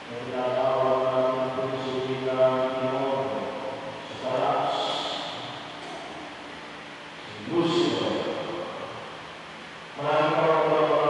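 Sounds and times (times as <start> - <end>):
man chanting into a microphone: 0.0 - 5.6.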